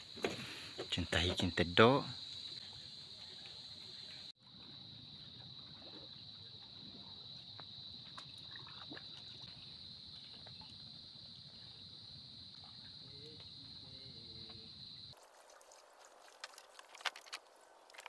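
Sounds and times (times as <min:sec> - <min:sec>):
water lapping: 0:04.6 - 0:13.4, 0:15.1 - 0:18.0
paddle splashes: 0:05.6 - 0:11.6, 0:15.1 - 0:18.0.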